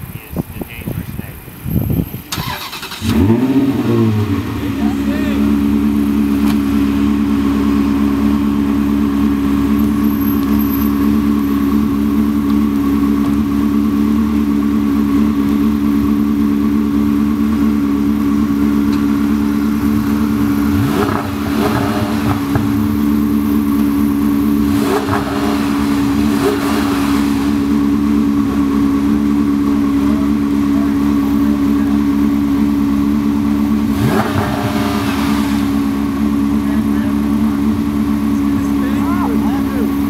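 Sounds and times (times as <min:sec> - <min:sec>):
car engine cranking: 0:00.4 - 0:40.0
car engine firing: 0:00.4 - 0:40.0.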